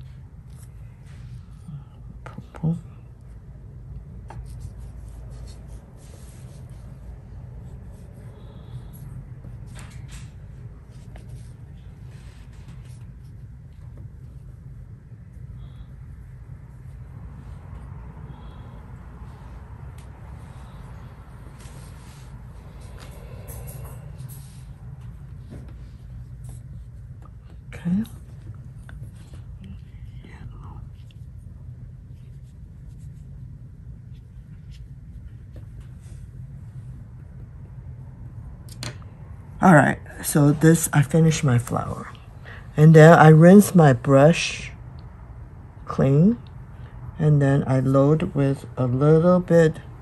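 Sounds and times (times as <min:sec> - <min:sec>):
low background hum: 0:00.0 - 0:50.0.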